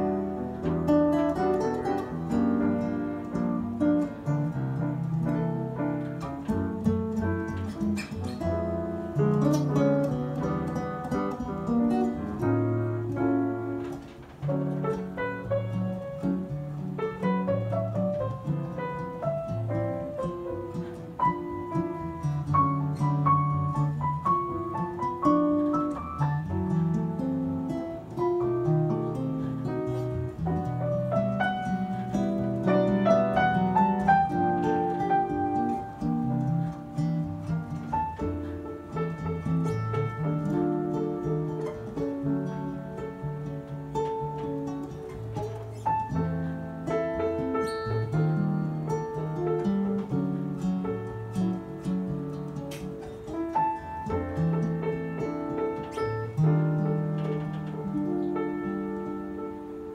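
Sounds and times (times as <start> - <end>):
grand piano playing jazz: 0.0 - 59.9
plucked acoustic guitar: 0.0 - 59.9.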